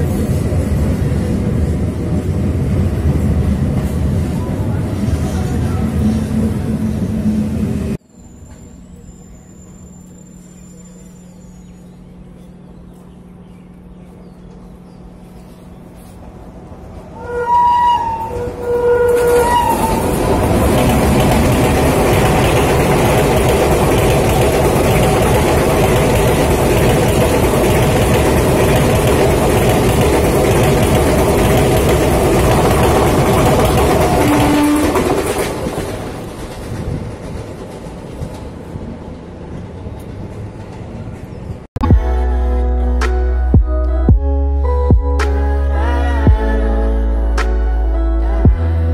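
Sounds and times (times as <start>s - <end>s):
train rumbling past: 0.0s - 42.9s
train horn blasts: 17.2s - 20.3s, 34.1s - 35.4s.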